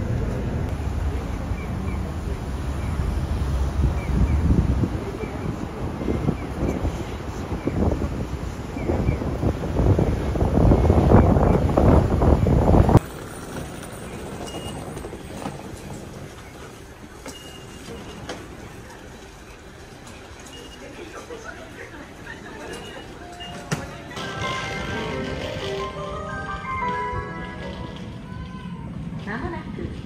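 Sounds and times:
city street traffic: 0.0 - 30.0
underground station hum: 0.0 - 30.0.

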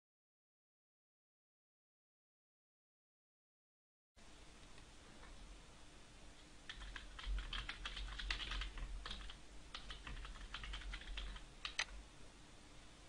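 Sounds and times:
computer keyboard typing: 6.7 - 12.0.

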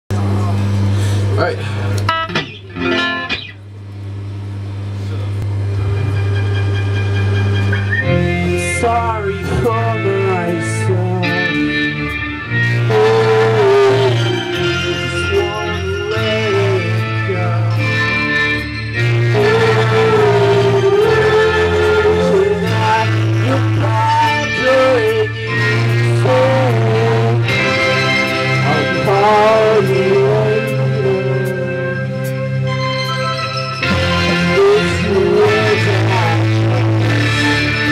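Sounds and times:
held low note: 0.1 - 37.9
low drone of amplified instruments: 0.1 - 37.9
live rock band playing: 1.8 - 3.6, 5.6 - 37.9
sliding lead guitar melody: 1.8 - 4.6, 5.4 - 37.9.

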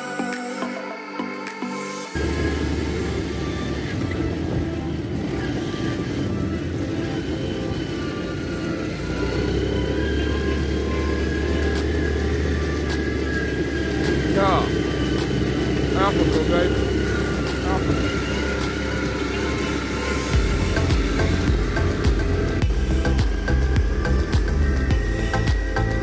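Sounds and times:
quad bike engine running: 2.1 - 26.0.

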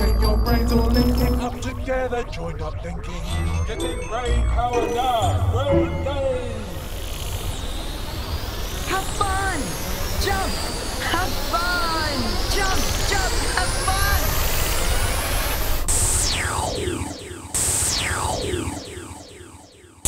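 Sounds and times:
warbling electronic chirps: 0.0 - 20.0
sweeping electronic whooshes: 5.6 - 19.8.

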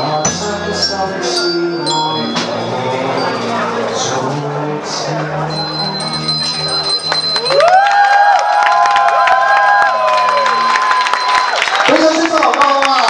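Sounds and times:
bell-like chime: 0.0 - 4.2, 5.5 - 7.8
guests clapping and cheering: 6.4 - 13.0.

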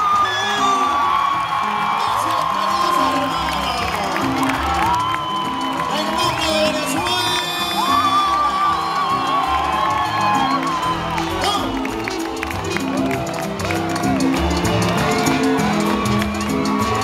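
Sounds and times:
crowd cheering and whooping: 0.0 - 17.0
salsa band playing: 0.0 - 17.0.

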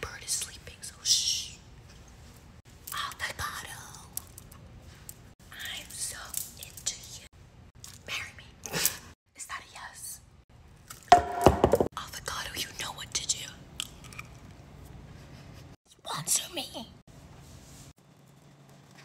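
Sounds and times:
person whispering: 5.5 - 7.3.

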